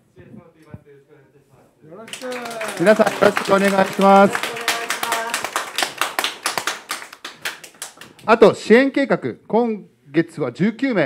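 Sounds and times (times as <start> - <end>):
small group clapping: 2.0 - 8.4.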